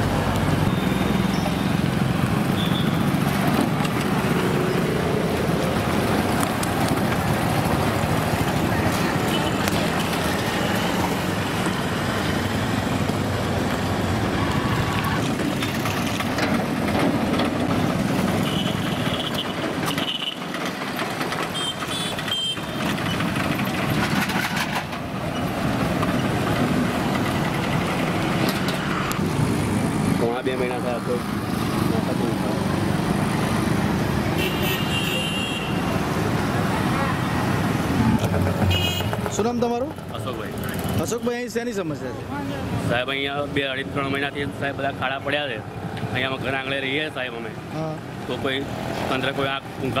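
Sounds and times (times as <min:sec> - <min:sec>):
motorcycles and vehicles passing: 0:00.0 - 0:50.0.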